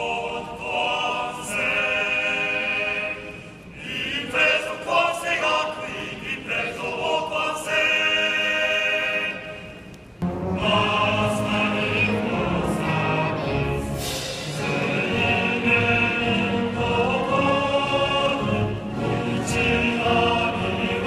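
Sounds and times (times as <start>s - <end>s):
group of voices singing: 0.0s - 21.0s.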